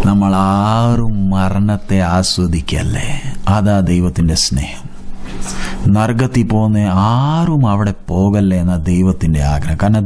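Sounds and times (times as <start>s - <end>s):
man preaching: 0.0s - 4.9s, 5.8s - 10.0s.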